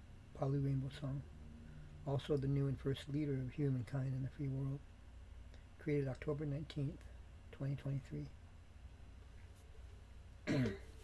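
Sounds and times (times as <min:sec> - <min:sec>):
low steady hum: 0:00.0 - 0:11.0
man clearing throat: 0:10.4 - 0:11.0.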